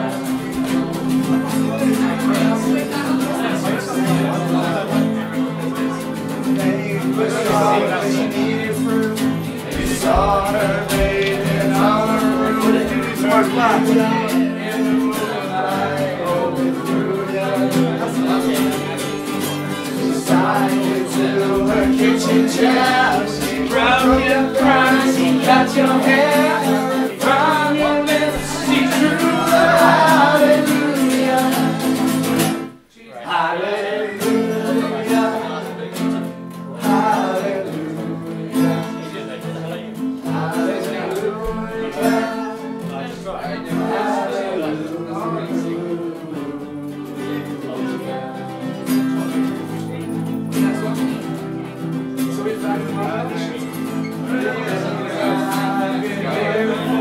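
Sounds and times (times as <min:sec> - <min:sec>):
young men singing: 0:00.0 - 0:36.1, 0:36.8 - 0:49.9, 0:52.3 - 0:57.0
acoustic guitars strummed: 0:00.0 - 0:57.0.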